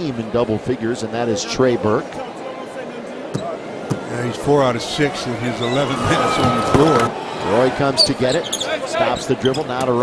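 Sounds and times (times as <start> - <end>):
murmur of crowd: 0.0 - 10.0.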